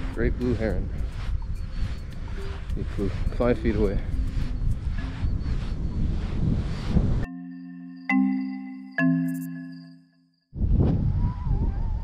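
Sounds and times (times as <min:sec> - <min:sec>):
wind buffeting microphone: 0:00.0 - 0:07.3, 0:10.5 - 0:12.0
faint wavering high tone: 0:01.4 - 0:06.2, 0:07.0 - 0:10.5
background music notes: 0:07.2 - 0:10.1.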